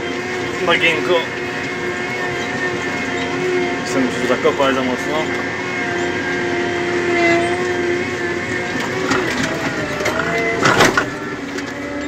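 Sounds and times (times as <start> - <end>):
diesel tractor engine droning: 0.0 - 12.0.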